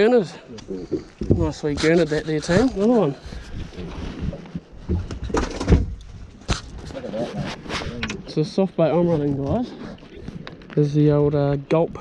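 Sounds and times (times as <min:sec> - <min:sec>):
cloth rubbing on microphone: 0:06.5 - 0:08.0.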